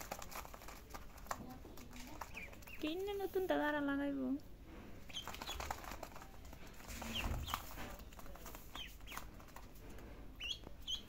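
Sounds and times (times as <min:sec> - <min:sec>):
ducklings peeping: 0:00.0 - 0:03.4, 0:05.0 - 0:11.0.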